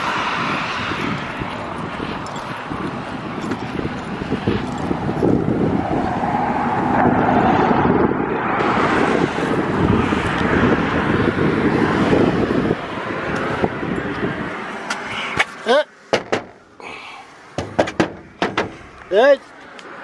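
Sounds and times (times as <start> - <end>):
wind buffeting microphone: 0.0 - 15.3
car passing: 0.0 - 20.0.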